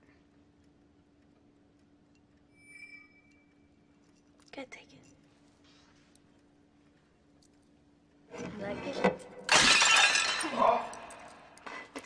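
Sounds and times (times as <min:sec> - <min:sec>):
plate shattering: 0:09.4 - 0:11.4.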